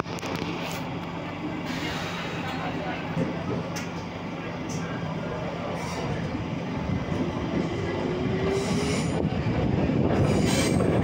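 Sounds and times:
electrical hum of metro car: 0.0s - 11.0s
passengers' voices: 0.0s - 11.0s.

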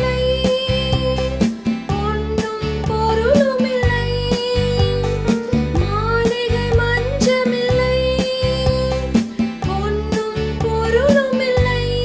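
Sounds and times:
backing track with beat and bass: 0.0s - 12.0s
woman singing: 0.0s - 12.0s.

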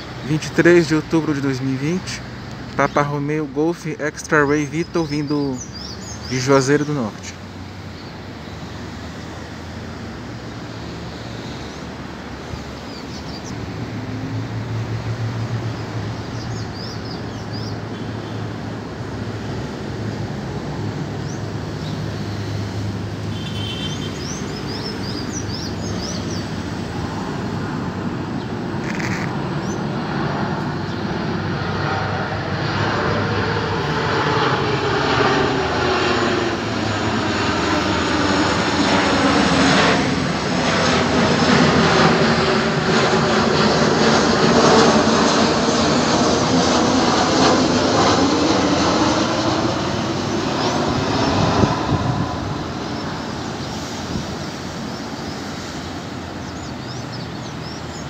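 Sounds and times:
jet airliner roar overhead: 0.0s - 58.0s.

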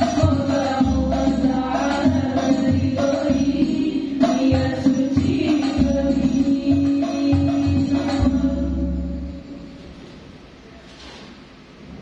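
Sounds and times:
women singing devotional song: 0.0s - 9.3s
frame drums beating: 0.0s - 9.6s.

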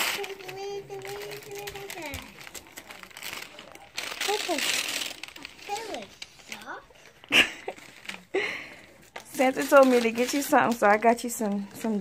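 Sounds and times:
wrapping paper crinkling: 0.0s - 11.9s.

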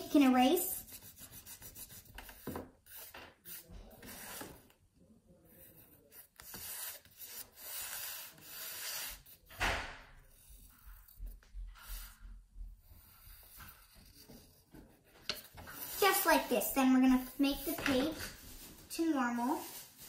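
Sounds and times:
eraser rubbing on paper: 0.1s - 4.6s, 5.5s - 9.5s, 10.3s - 12.2s, 12.8s - 20.0s
thump: 9.5s - 10.2s.

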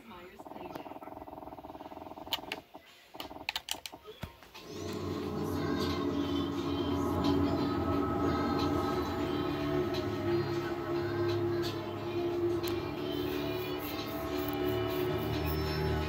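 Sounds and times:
music from television speaker: 0.0s - 16.0s
steady tone: 4.7s - 16.0s.

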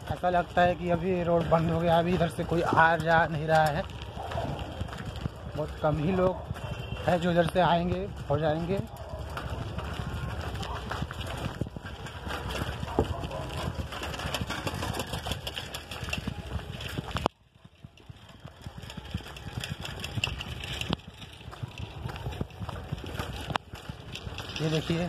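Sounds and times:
bicycle rattles and clicks: 0.0s - 25.0s
bicycle riding rumble: 0.0s - 25.0s
wind buffeting microphone: 0.0s - 25.0s.

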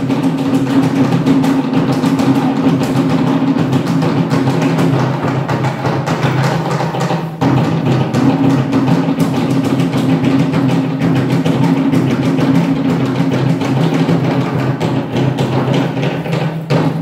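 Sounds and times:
fast drumming: 0.0s - 17.0s.

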